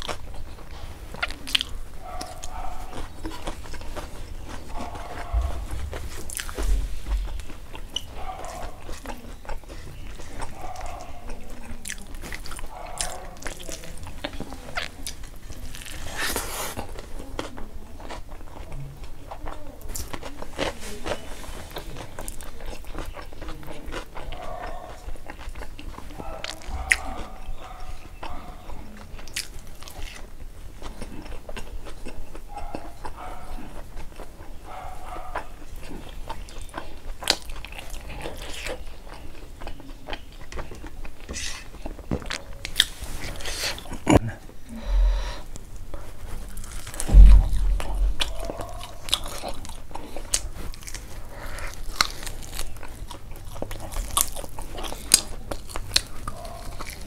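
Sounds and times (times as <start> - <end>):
wet chewing and mouth smacks: 0.0 - 44.1, 44.7 - 57.0
dull low thumps: 5.3 - 7.7, 47.0 - 48.9.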